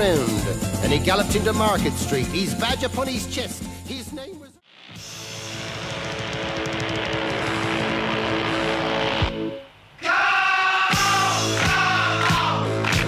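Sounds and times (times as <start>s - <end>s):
motorcycle engine revving: 5.0s - 9.4s.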